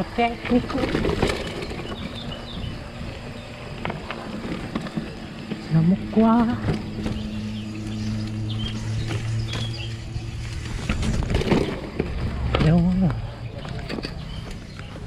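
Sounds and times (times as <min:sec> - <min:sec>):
low hum: 0:00.0 - 0:15.0
mountain bike rattling: 0:00.0 - 0:15.0.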